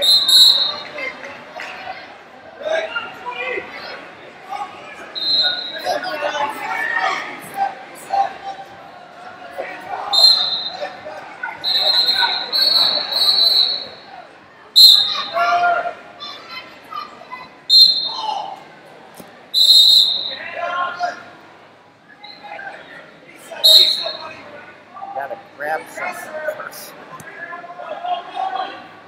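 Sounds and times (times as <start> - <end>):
voices shouting in echoing hall: 0.0 - 18.9, 19.5 - 29.0
shrill high-pitched squeals: 10.2 - 10.9, 11.6 - 14.2, 14.8 - 15.4, 17.7 - 18.3, 19.6 - 20.5, 23.6 - 24.4.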